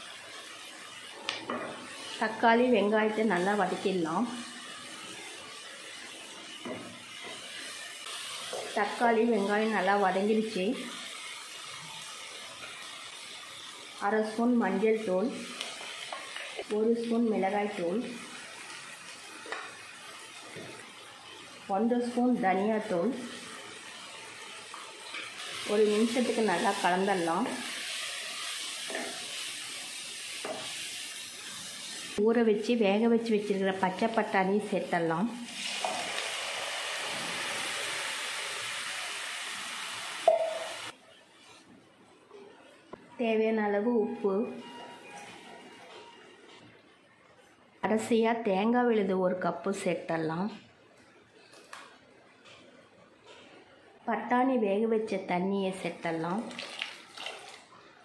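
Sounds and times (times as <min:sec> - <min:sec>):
onions sizzling in hot oil: 0:00.0 - 0:41.5
peas and water poured into pot: 0:56.4 - 0:57.8.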